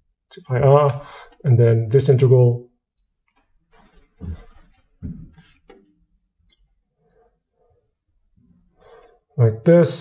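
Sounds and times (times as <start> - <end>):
marker squeaking on glass: 3.0 - 5.7, 6.5 - 8.0.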